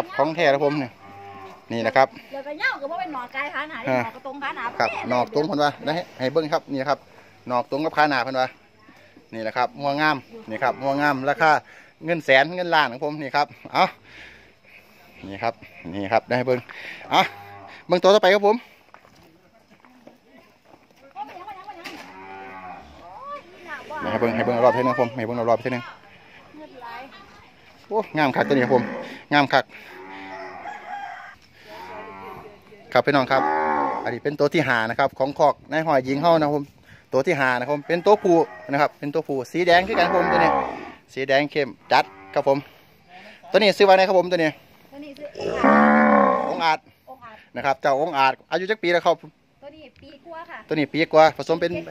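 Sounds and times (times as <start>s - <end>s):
cow mooing: 1.0s - 1.7s, 21.9s - 23.1s, 28.3s - 29.2s, 33.3s - 34.1s, 39.8s - 41.0s, 41.8s - 42.4s, 45.3s - 46.7s.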